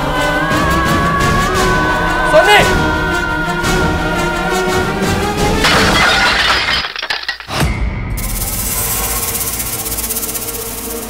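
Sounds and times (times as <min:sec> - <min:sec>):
dramatic background music: 0:00.0 - 0:05.7
glass chandelier shattering: 0:05.6 - 0:07.6.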